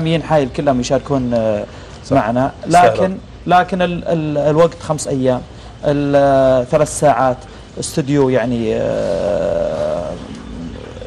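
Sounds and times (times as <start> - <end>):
man humming hesitantly: 2.7 - 3.2, 8.8 - 11.0.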